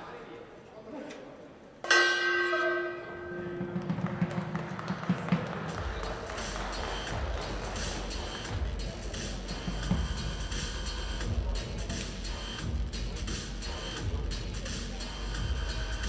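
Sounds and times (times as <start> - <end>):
bell ringing out: 1.9 - 4.8
music with low pulsing beat: 3.6 - 16.0.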